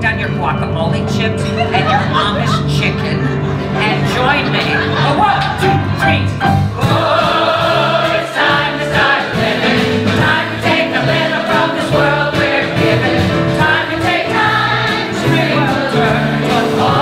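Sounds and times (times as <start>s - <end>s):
bass: 0.0s - 17.0s
drums: 0.0s - 17.0s
piano: 0.0s - 17.0s
audience singing along: 6.6s - 17.0s.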